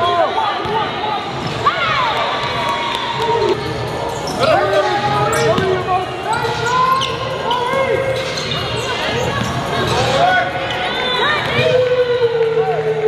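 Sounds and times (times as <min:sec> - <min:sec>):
sneakers squeaking: 0:00.0 - 0:11.9.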